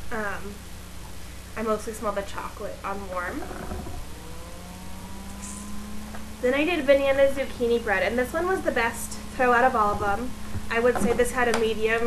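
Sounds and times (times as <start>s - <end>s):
low background drone: 0.0s - 12.0s
engine hum rising in pitch: 2.8s - 11.0s.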